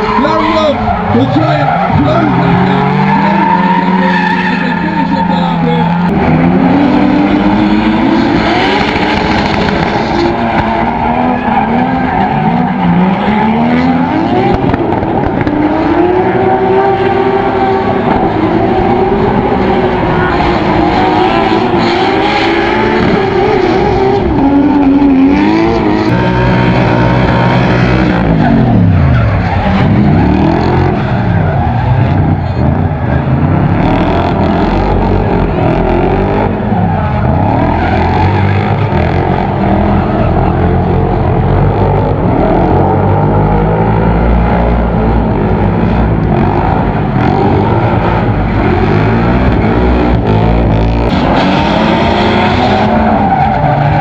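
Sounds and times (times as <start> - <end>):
car engines revving hard: 0.0 - 54.0.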